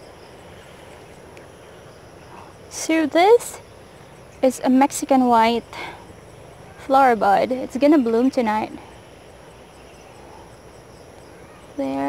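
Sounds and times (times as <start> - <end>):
faint insect chirp: 0.0 - 12.0
insects droning: 0.0 - 12.0
low hiss: 0.0 - 12.0.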